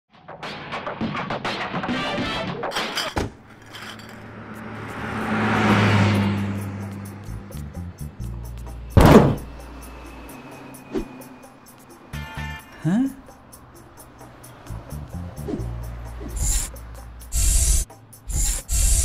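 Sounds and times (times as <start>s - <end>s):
background music: 0.2s - 18.8s
car engine sound effect: 4.0s - 19.0s
door thunk: 9.0s - 9.5s.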